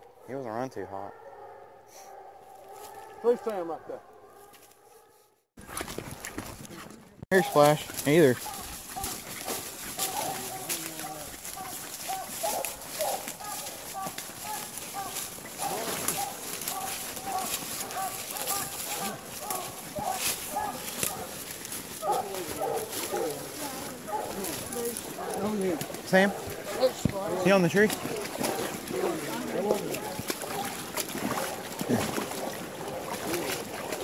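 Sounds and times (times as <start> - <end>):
dogs barking: 0.0 - 5.3, 7.3 - 34.0.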